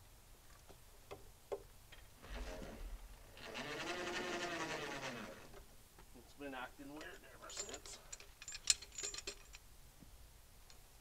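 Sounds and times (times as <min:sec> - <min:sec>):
electric winch motor whine: 0:02.2 - 0:05.6
cable clinking: 0:06.9 - 0:09.6.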